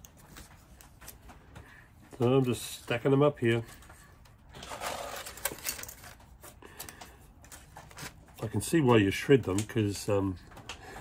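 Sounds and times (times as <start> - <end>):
plastic pieces rustling and clicking: 4.5 - 8.5.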